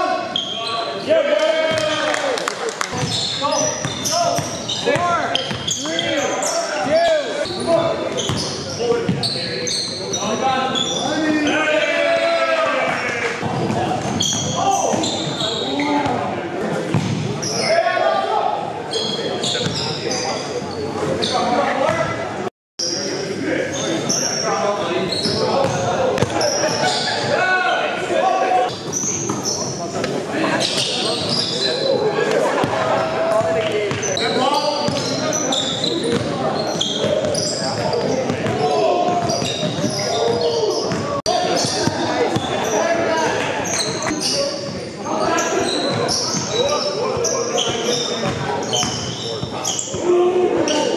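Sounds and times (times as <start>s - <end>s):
players calling out: 22.9s - 50.9s.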